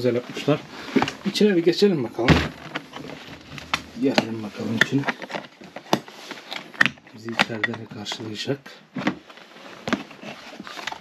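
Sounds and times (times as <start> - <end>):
light handling noise: 2.2 - 11.0.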